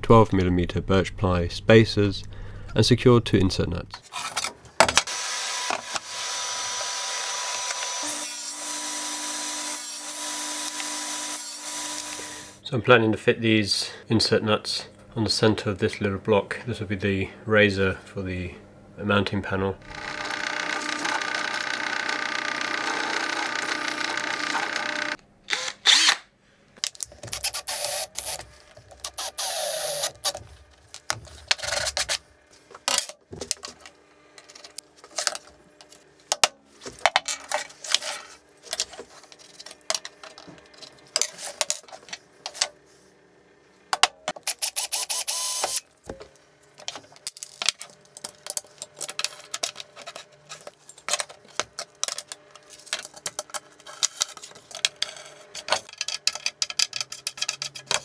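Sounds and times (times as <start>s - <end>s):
power drill running: 5.1s - 12.6s, 19.8s - 26.2s, 27.4s - 28.4s, 29.0s - 30.3s, 44.5s - 45.8s.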